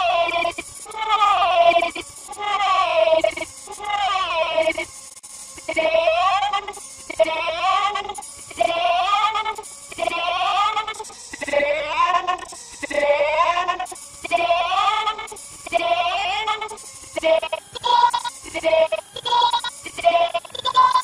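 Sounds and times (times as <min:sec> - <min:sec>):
warbling processed cartoon voice: 0:00.0 - 0:04.9, 0:05.6 - 0:21.0.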